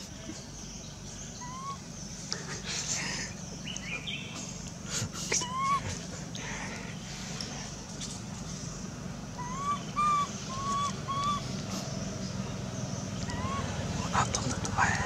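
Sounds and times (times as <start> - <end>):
low background hum: 0.0 - 15.0
whistled calls: 1.2 - 2.0, 9.4 - 12.4, 13.0 - 15.0.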